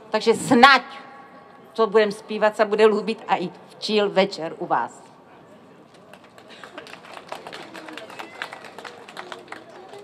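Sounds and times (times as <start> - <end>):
audience hand claps: 6.1 - 10.0.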